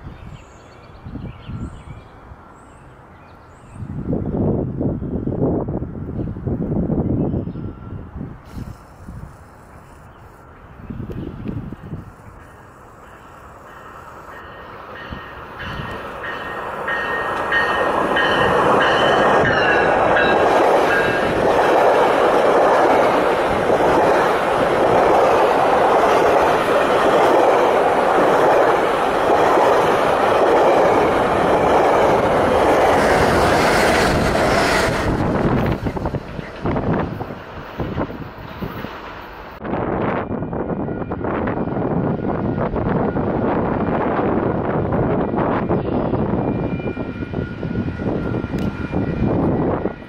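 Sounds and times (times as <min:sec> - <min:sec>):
train passing at speed: 0:00.0 - 0:50.0
rush of train wheels: 0:11.0 - 0:50.0.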